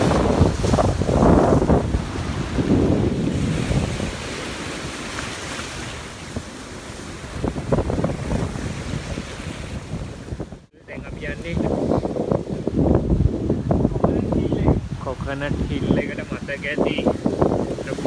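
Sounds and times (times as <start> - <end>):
sea waves washing in: 0.0 - 18.0
wind buffeting microphone: 0.0 - 18.0.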